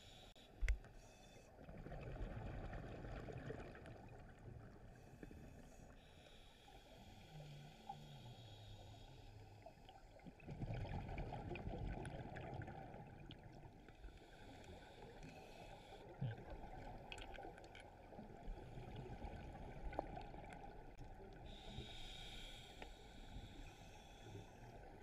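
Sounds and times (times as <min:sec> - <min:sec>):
scuba bubbles gurgling: 0:01.6 - 0:04.8, 0:10.0 - 0:21.7.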